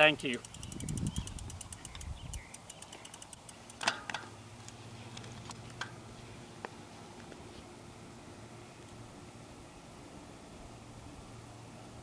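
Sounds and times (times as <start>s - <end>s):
bicycle freehub ticking: 0.0s - 4.8s
sharp click: 0.3s - 4.8s.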